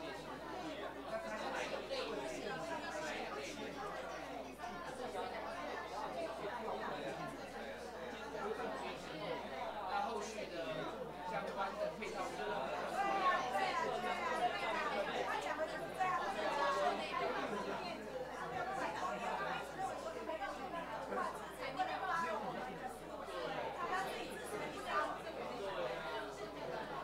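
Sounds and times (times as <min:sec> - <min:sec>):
hubbub of overlapping conversations: 0:00.0 - 0:27.0.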